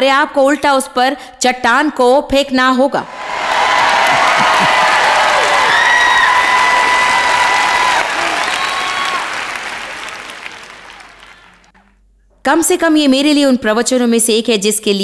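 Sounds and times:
audience applauding: 3.1 - 11.7.

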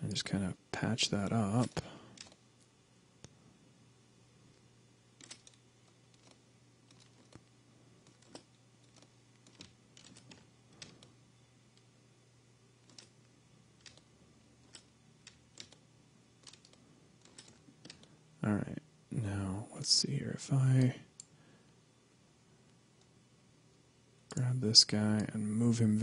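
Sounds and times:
steady low hum: 0.0 - 26.0
keyboard and mouse clicks: 1.6 - 2.4, 5.2 - 11.1, 12.8 - 13.2, 13.8 - 15.8, 16.4 - 18.1.

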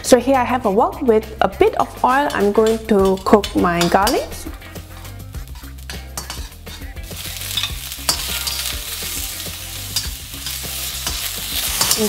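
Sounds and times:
metal spatula scraping a wok: 2.0 - 12.0
hissing sizzle of mushrooms: 5.3 - 12.0
garlic frying in oil: 5.4 - 12.0.

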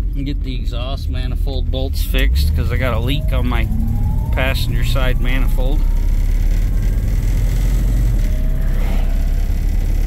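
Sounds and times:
engine and road rumble: 0.0 - 10.0
faint rising tone: 2.2 - 10.0.

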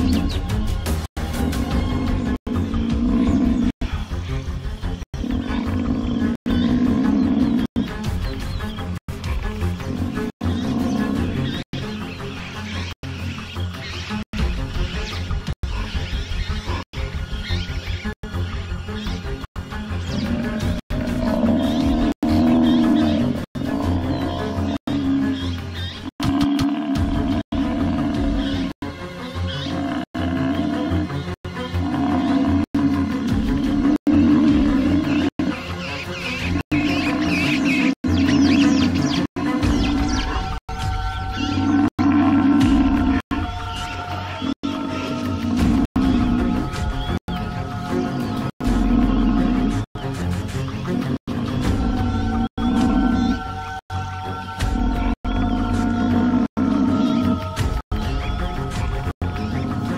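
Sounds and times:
background music: 0.0 - 59.9
lion roaring: 2.1 - 4.0, 5.2 - 7.7, 20.2 - 25.4, 26.2 - 28.8, 29.6 - 35.7, 41.5 - 43.2, 48.0 - 49.9, 54.6 - 57.5.

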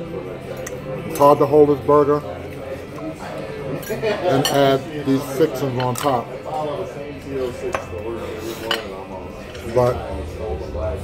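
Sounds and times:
light cutlery handling: 5.8 - 6.3.

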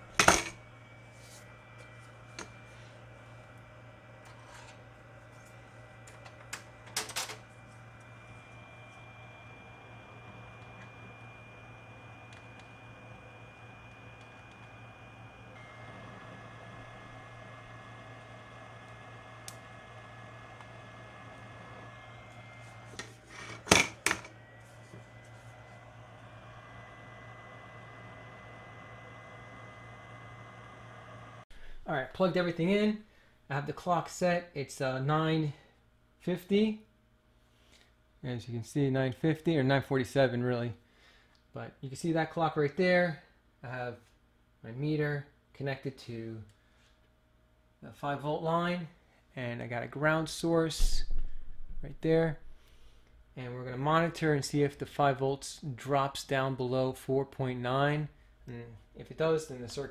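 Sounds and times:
low electrical hum: 0.0 - 59.9
faint thin whines: 0.4 - 31.4.

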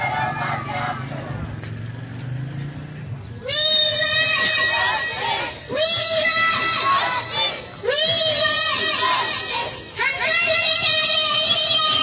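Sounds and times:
girl singing through loudspeaker: 3.5 - 12.0.

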